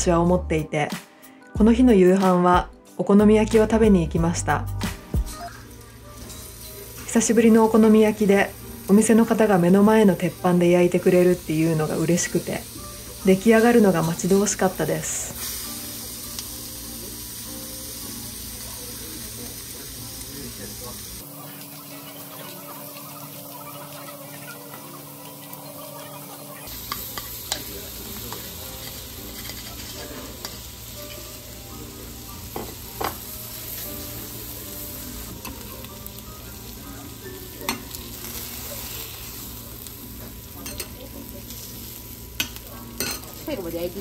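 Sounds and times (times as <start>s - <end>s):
meat sizzling on a griddle: 5.0s - 44.0s.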